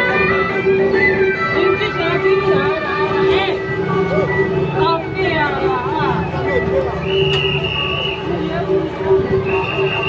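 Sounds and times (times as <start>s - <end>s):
procession music with bending notes: 0.0s - 10.0s
voices on the street: 0.0s - 10.0s.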